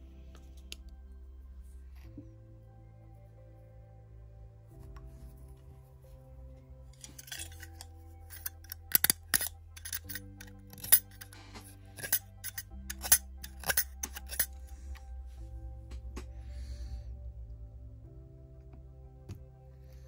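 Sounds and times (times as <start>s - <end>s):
soft background music chords: 0.0s - 20.0s.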